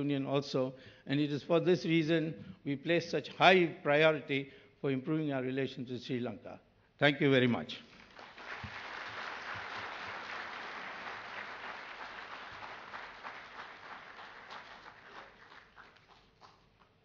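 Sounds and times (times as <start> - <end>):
audience applauding: 7.9 - 17.0.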